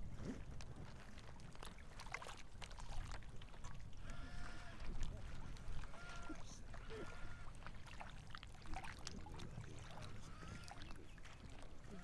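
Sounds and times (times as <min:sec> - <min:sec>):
faint water sounds: 0:00.0 - 0:12.0
low rumble of wind: 0:00.0 - 0:12.0.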